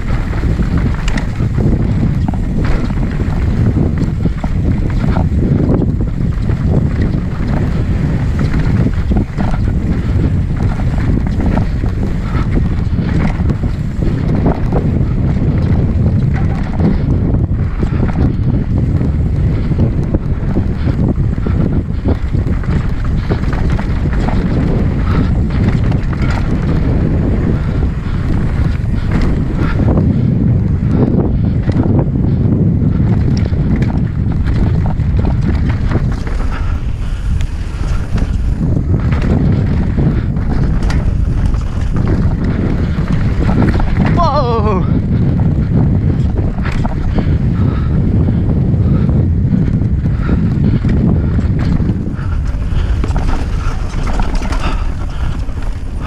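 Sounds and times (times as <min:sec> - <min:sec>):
bike knocks and rattles: 0:00.0 - 0:56.0
tyres rumbling on dirt and rock: 0:00.0 - 0:56.0
wind buffeting microphone: 0:00.0 - 0:56.0.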